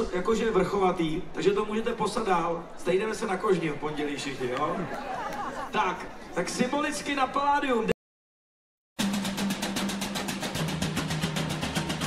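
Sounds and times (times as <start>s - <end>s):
rapid drum roll: 9.0s - 12.0s.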